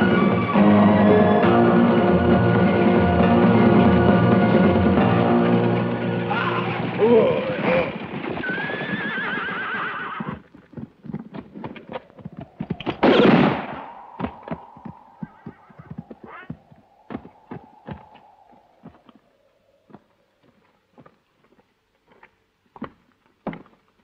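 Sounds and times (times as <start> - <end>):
galloping horses: 5.9 - 24.0
horse whinnying: 6.3 - 10.4
revolver gunshot: 13.0 - 13.9.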